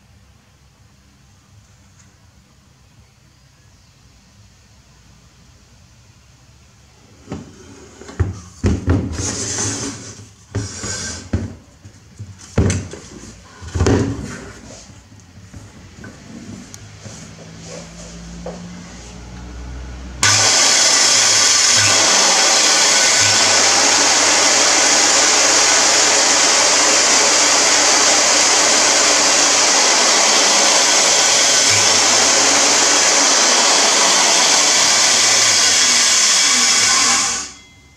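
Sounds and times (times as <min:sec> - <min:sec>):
circular saw running: 0:20.2 - 0:37.6.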